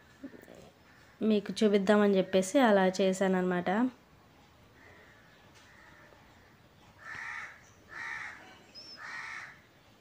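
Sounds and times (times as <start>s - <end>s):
crow cawing: 0.2s - 1.3s, 4.8s - 9.6s.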